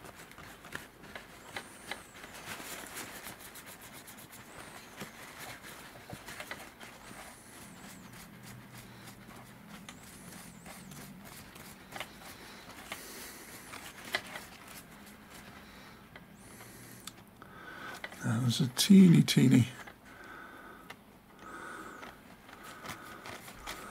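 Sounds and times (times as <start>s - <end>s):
paper towel rubbing and crinkling: 0.0s - 15.9s, 22.3s - 23.9s.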